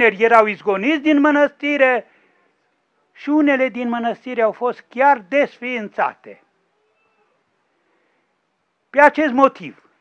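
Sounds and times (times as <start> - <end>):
man speaking: 0.0 - 2.1, 3.1 - 6.4, 8.9 - 9.9.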